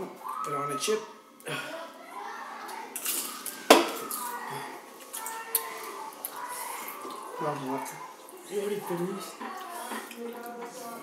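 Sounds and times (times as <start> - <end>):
utensils clattering: 2.9 - 4.3.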